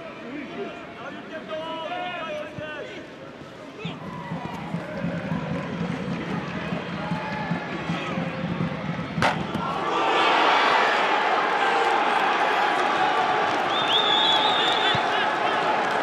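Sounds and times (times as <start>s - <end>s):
stadium crowd noise: 0.0s - 16.0s
sharp kick of a ball: 9.2s - 9.7s.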